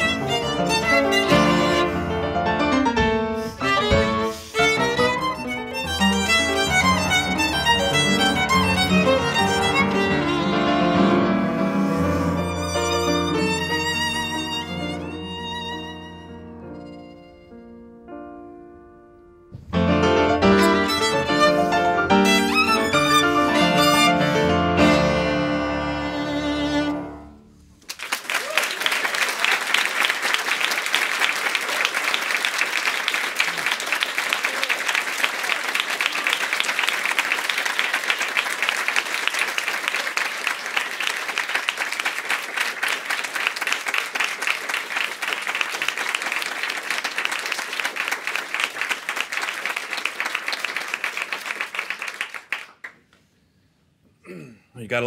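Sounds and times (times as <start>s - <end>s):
violin and piano chord: 0.0s - 27.6s
audience applauding: 3.6s - 11.3s, 27.8s - 53.1s.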